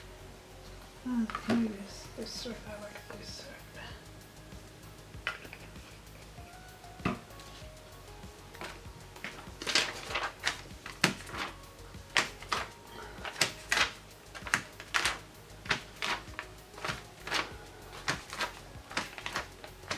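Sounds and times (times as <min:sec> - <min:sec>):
faint background music: 0:00.0 - 0:19.9
paper rustling and crackling: 0:08.6 - 0:19.9.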